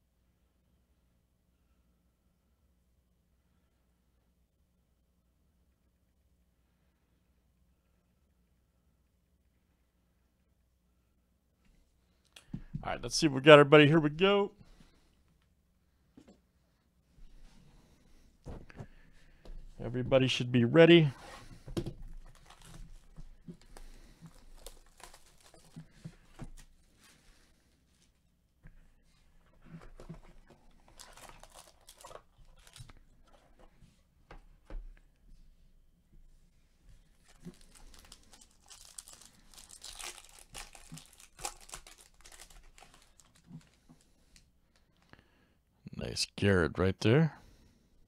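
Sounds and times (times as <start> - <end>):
plastic wrap crinkling: 21.2 - 27.3, 29.8 - 33.5, 37.0 - 45.0.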